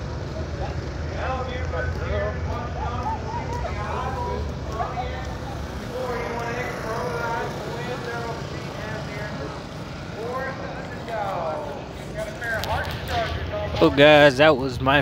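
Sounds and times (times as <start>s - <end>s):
people talking indistinctly: 0.4s - 15.0s.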